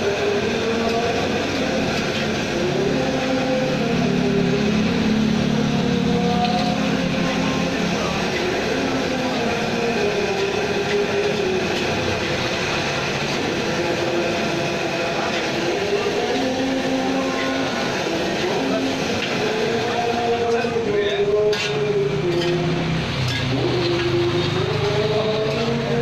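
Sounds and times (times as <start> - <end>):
wok burner roaring: 0.0 - 26.0
metal spatula stirring wok: 21.4 - 24.8.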